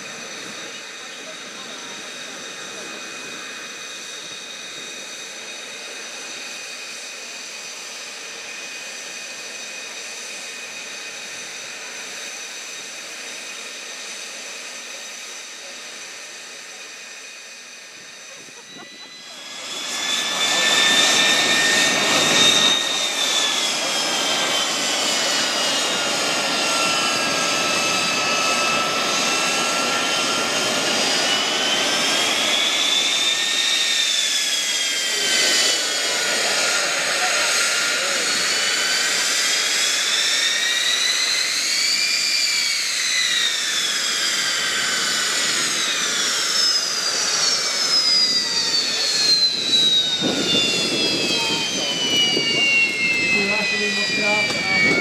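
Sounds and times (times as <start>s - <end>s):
jet engine whine: 0.0s - 55.0s.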